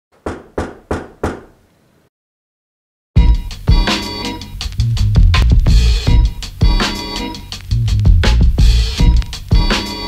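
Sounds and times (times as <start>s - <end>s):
knocks on a door: 0.2s - 1.5s.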